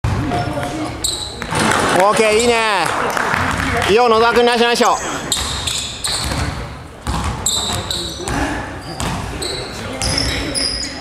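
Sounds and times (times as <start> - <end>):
players' voices: 0.1 - 11.0
sneaker squeak: 0.4 - 1.6, 4.8 - 11.0.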